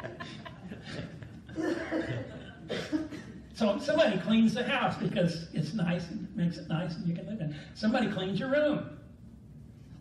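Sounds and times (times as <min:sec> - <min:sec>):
people laughing: 0:00.0 - 0:03.1.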